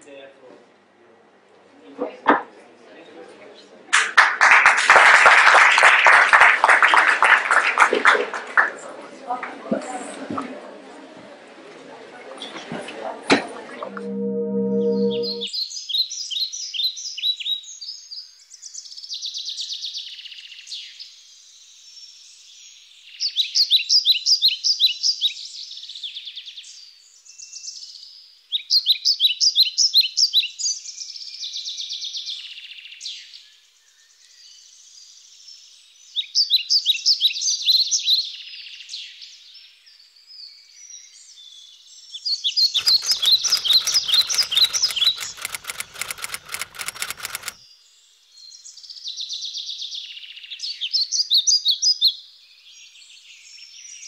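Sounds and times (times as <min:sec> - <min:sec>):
birds chirping in trills: 0:42.8 - 0:47.6
rapid clicking rattle: 0:42.8 - 0:47.6.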